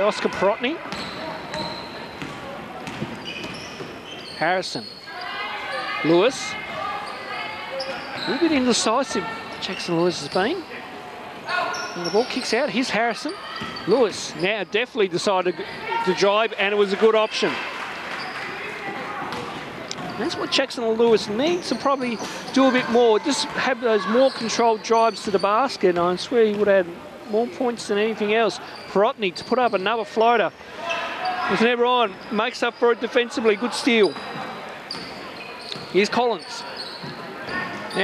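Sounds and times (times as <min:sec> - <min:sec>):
murmur of crowd: 0:00.0 - 0:38.0
basketball bouncing on hardwood floor: 0:01.5 - 0:03.6.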